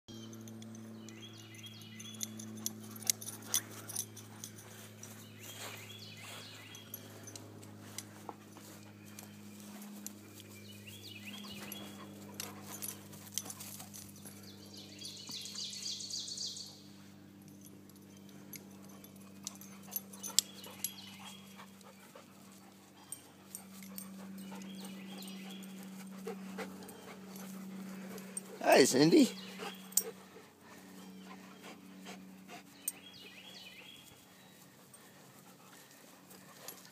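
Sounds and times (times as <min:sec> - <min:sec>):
steady low hum: 0:00.1 - 0:36.9
dogs panting: 0:00.5 - 0:36.9
dogs moving on grass: 0:02.1 - 0:16.1, 0:17.1 - 0:36.9.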